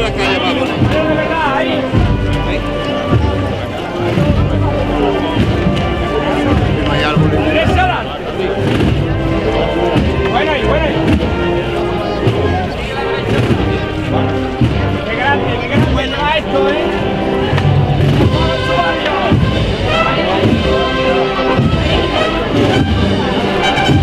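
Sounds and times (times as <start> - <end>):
brass band playing slow march: 0.0 - 24.0
steady drum beat: 0.0 - 24.0.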